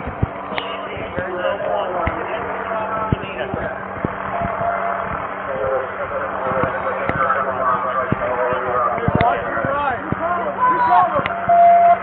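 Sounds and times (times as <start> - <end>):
indistinct voices: 0.0 - 12.0
low hum: 0.0 - 12.0.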